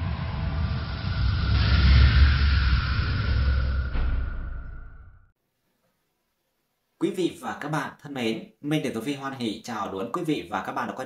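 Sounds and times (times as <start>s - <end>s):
hissing whoosh: 0.0s - 5.2s.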